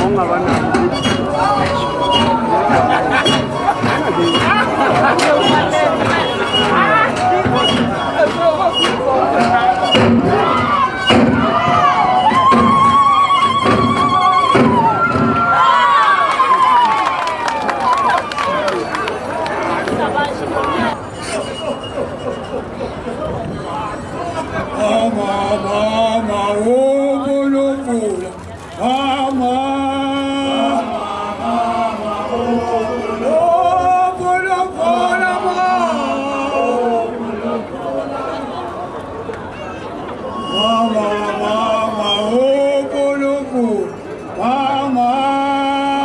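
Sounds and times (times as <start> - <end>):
dance thuds: 0.0 - 15.6
voices chanting and calling: 0.0 - 46.0.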